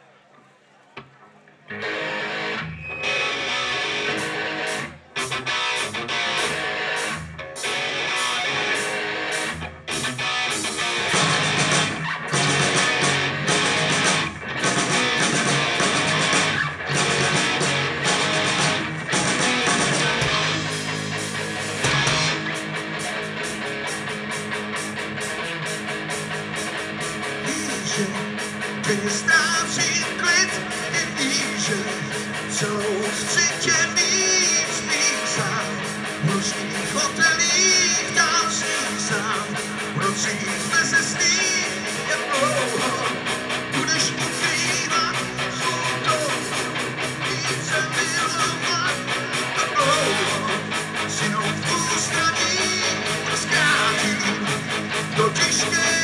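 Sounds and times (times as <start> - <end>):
bass guitar: 1.0 - 56.0
electric guitars: 1.0 - 56.0
rock band playing: 1.7 - 56.0
drums: 2.1 - 56.0.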